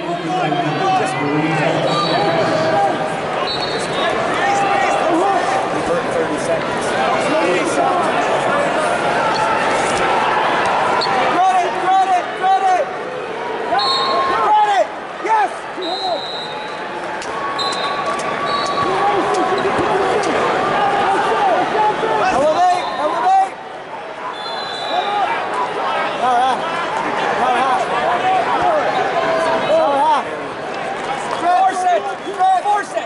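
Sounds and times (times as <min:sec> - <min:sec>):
arena crowd noise: 0:00.0 - 0:33.0.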